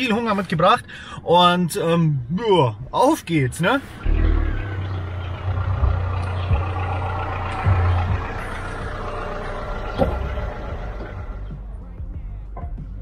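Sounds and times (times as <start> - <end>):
car engine pulling away: 3.8 - 11.7.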